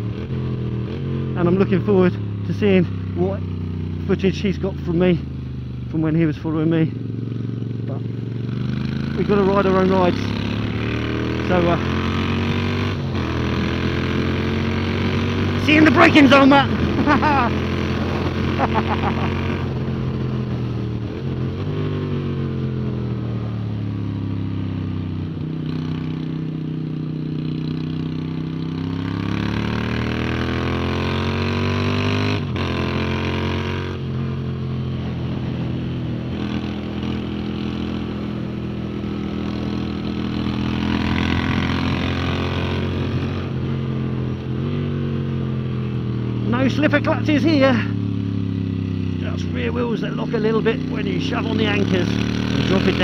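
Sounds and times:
motorcycle engine at speed: 0.0 - 53.0
wind rush: 17.7 - 18.6.

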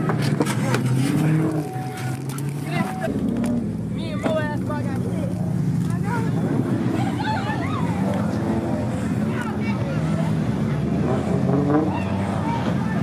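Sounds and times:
car engine revving: 0.0 - 13.0
people talking and shouting: 0.0 - 13.0.

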